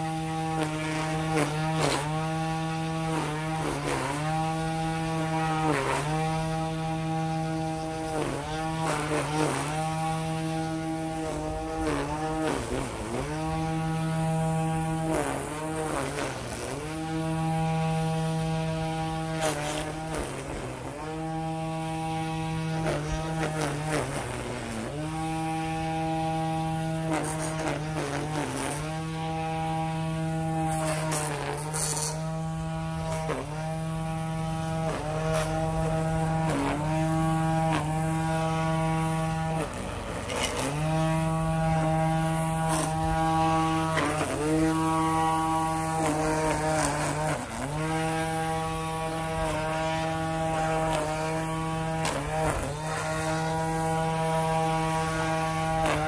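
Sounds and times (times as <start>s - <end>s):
string trimmer motor whining: 0.0s - 56.0s
trimmer line ticking on edging: 0.0s - 56.0s.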